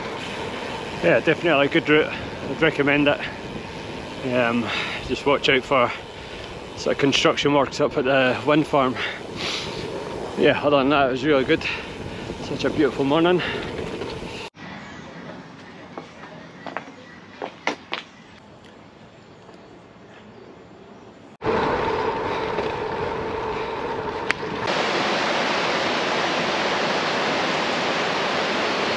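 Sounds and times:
wind on microphone: 0.0 - 14.5
bike tyre noise on tarmac: 0.0 - 28.9
river rushing over rapids: 24.6 - 28.9.

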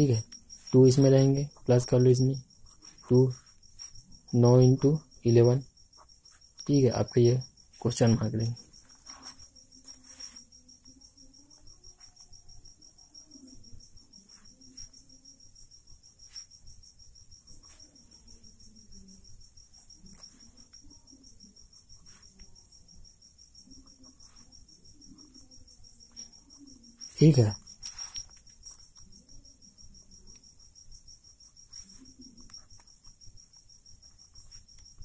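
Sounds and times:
high-pitched insect trill: 0.0 - 35.0.

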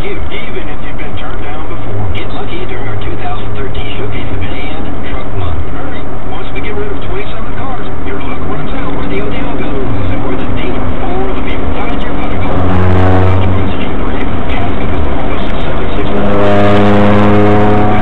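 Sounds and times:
heavy vehicle noise: 0.0 - 18.0
people's voices: 0.0 - 18.0
steady pitched drone: 0.0 - 18.0.

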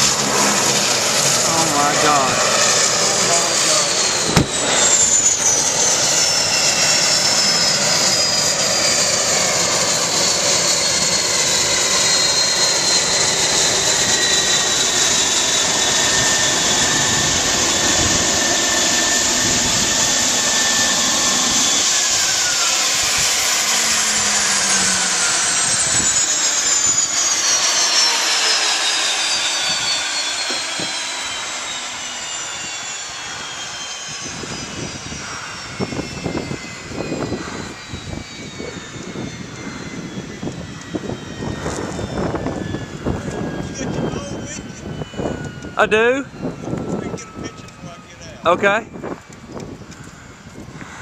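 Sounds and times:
turboprop engine winding down: 0.0 - 51.0
brief thump: 4.3 - 4.6.

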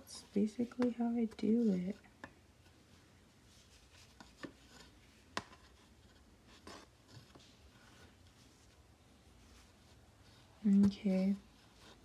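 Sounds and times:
thread rustling: 0.0 - 12.0.

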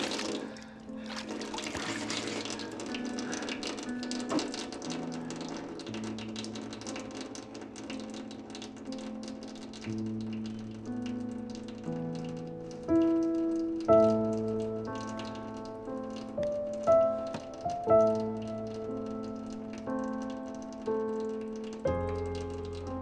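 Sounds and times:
slow music of held low notes: 0.0 - 23.0
tap water splashing: 0.0 - 23.0.

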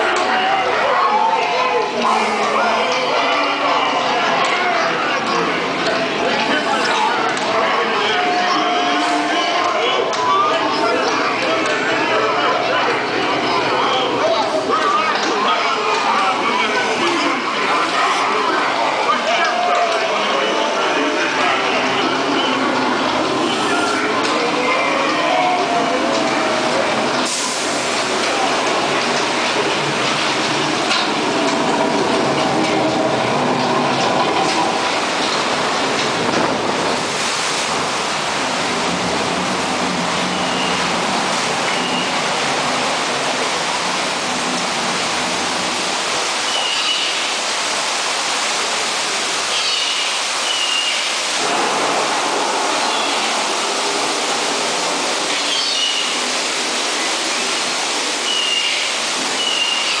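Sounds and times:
water rushing through flume: 0.0 - 60.0.

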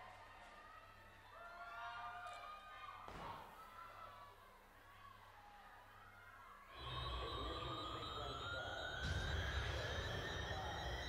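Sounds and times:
rising siren-like whine: 6.8 - 11.0.

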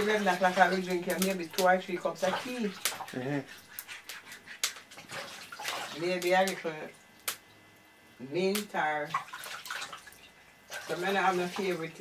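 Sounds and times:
wood fire crackling: 0.0 - 5.0, 6.0 - 9.1.

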